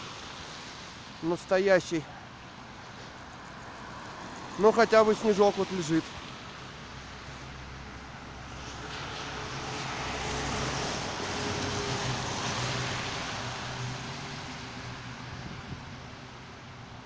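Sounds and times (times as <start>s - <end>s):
tyre hiss on wet road: 0.0s - 15.4s.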